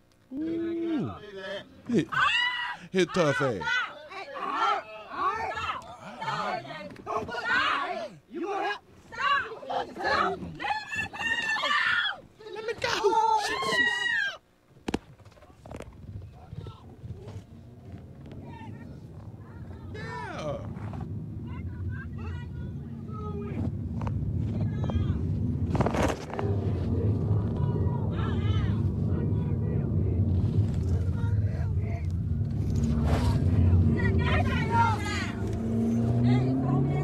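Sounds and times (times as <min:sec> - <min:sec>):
muffled voices: 0:00.3 - 0:13.9, 0:15.2 - 0:37.0
car engine and road rumble: 0:15.6 - 0:37.0.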